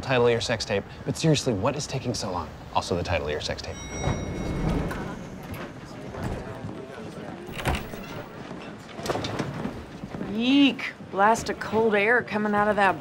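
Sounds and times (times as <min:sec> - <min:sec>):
elevator chime: 0:03.6 - 0:06.6.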